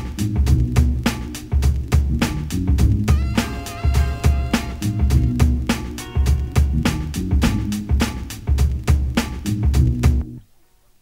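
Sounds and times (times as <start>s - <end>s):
funk music with drums bass guitar: 0.0s - 10.4s.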